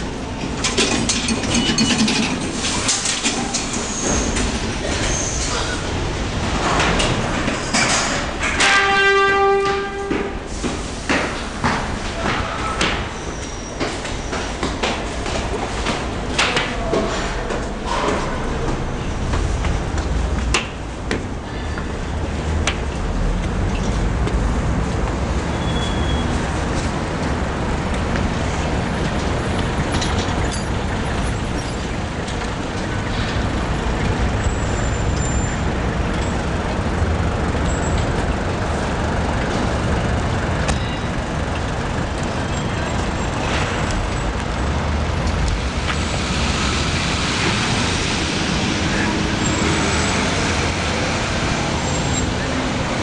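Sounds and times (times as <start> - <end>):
passing cars: 13.8 - 53.0.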